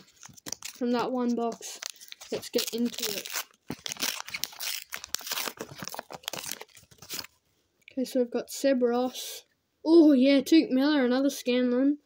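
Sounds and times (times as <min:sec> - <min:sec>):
plastic wrapper crinkling and tearing: 0:00.0 - 0:07.4.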